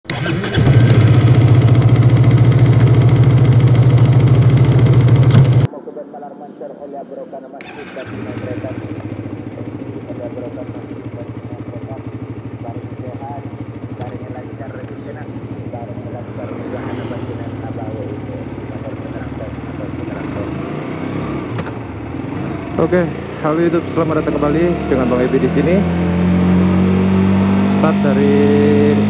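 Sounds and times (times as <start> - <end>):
motorcycle engine idling: 0.1 - 5.7, 7.6 - 26.2.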